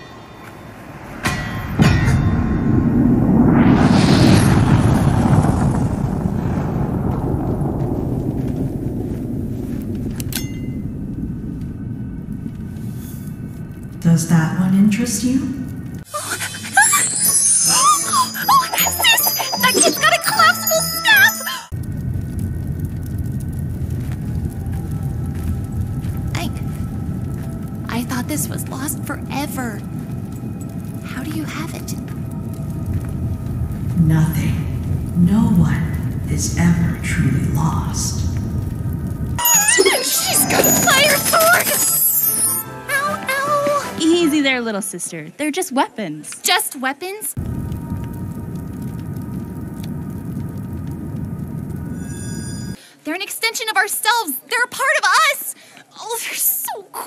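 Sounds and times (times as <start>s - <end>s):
rushing whoosh and rumble: 0.0s - 16.1s, 21.7s - 39.4s, 47.4s - 52.8s
rising hiss: 2.8s - 10.0s.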